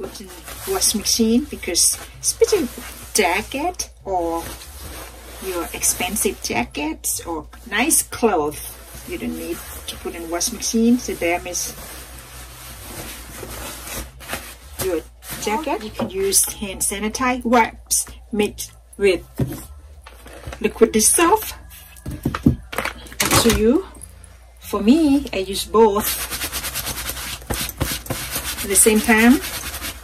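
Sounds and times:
hand rubbing nylon jacket: 7.8 - 16.6, 25.9 - 30.0.

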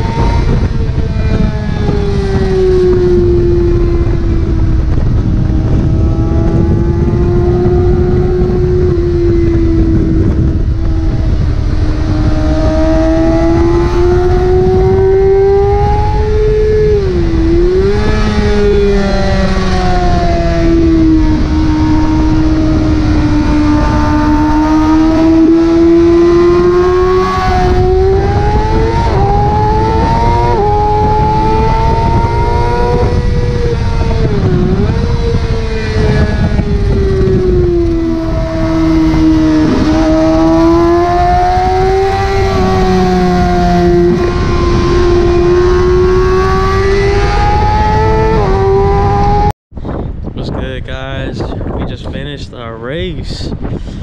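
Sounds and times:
racing motorcycle engine revving: 0.0 - 49.5
wind rush: 0.0 - 54.0.

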